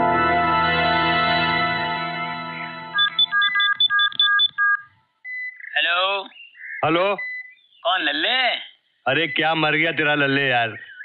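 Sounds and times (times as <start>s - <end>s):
steady phone tone: 0.0s - 4.9s
phone keypad beeps: 3.0s - 5.7s, 7.2s - 7.5s.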